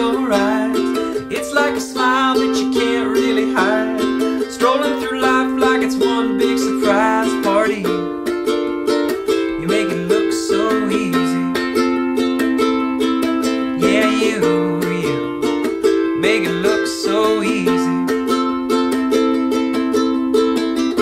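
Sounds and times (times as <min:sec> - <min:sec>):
ukulele strummed: 0:00.0 - 0:21.0.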